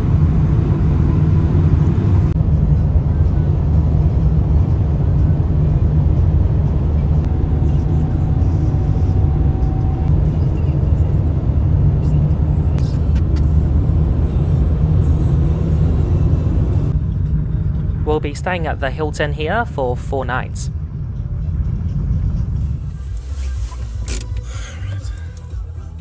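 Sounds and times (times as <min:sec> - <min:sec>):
car cabin road rumble: 0:00.0 - 0:26.0.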